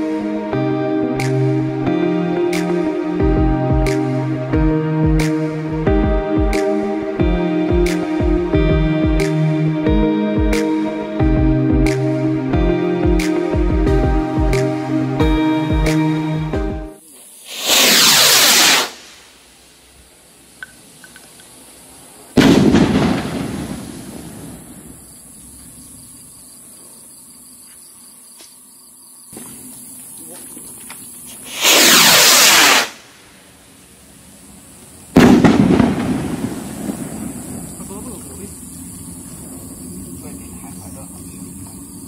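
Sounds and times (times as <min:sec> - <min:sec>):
background music: 0:00.0 - 0:17.0
firework rocket hissing whoosh: 0:17.0 - 0:25.0, 0:31.3 - 0:40.0.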